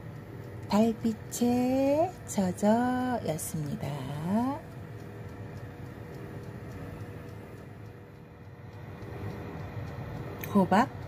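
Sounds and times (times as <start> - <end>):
faint constant tone: 0.0 - 11.0
low hum: 0.0 - 11.0.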